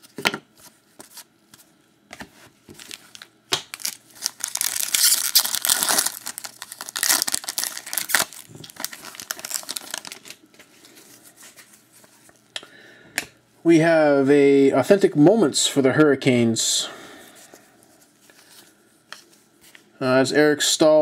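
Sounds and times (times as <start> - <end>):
wrapper tearing and crinkling: 2.8 - 10.4.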